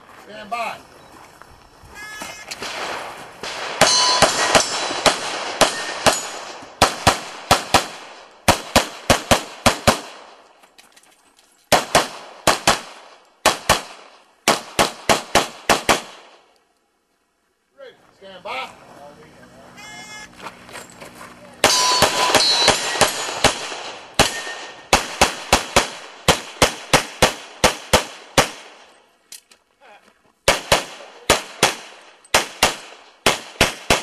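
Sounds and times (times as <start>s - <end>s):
handgun shots: 21.6s - 28.7s.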